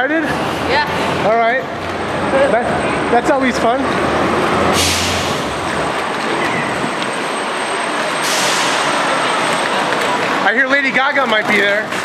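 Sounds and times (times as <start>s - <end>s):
busy traffic: 0.0s - 12.0s
crowd noise: 0.0s - 12.0s
loud hiss: 4.7s - 5.5s, 8.2s - 8.9s.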